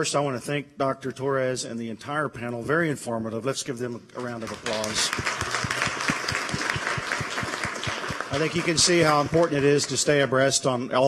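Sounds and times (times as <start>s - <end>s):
audience applauding: 4.2s - 10.3s.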